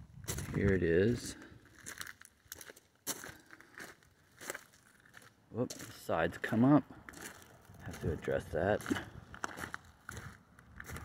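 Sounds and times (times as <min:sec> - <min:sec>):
footsteps on gravel: 0:00.2 - 0:11.0.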